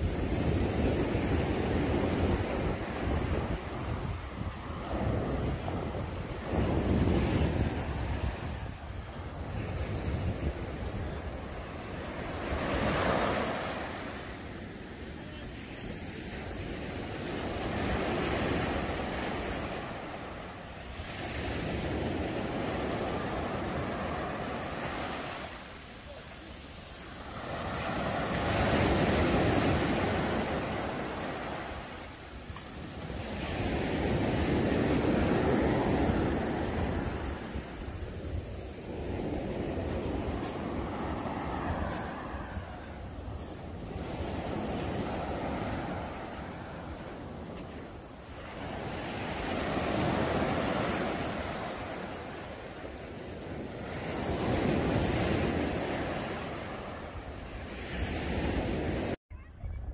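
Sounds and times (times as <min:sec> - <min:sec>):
small waves breaking on beach: 0:00.0 - 0:59.2.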